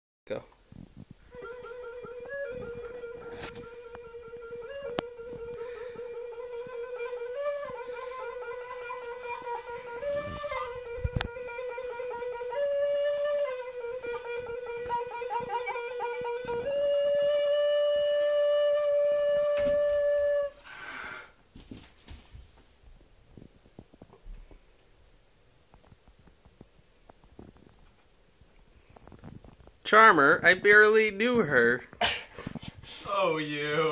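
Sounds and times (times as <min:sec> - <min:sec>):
recorder playing slow tune: 0:01.3 - 0:20.6.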